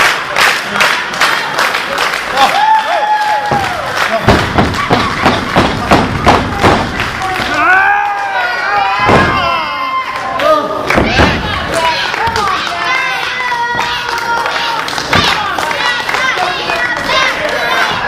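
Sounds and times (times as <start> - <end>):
audience clapping in unison: 0.0 - 8.5, 10.1 - 18.0.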